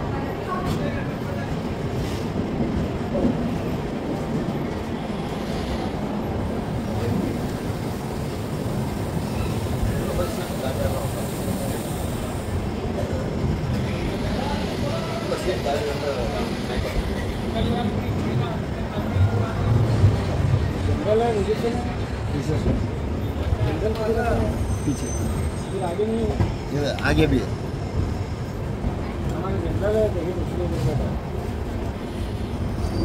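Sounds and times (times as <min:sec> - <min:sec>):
passenger train rumbling on tracks: 0:00.0 - 0:33.0.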